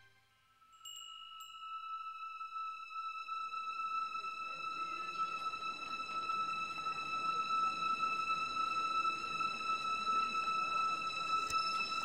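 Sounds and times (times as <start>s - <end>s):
music: 0.0s - 12.0s
soft chime: 0.0s - 12.0s.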